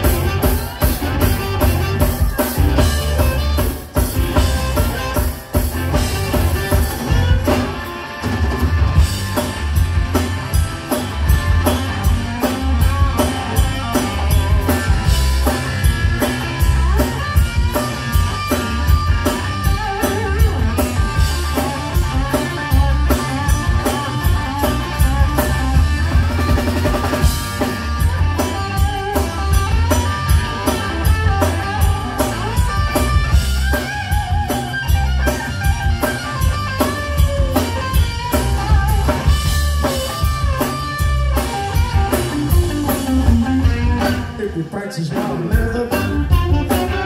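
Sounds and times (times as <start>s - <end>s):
bass guitar: 0.0s - 47.0s
drum kit beat: 0.0s - 47.0s
electric guitars: 0.0s - 47.0s.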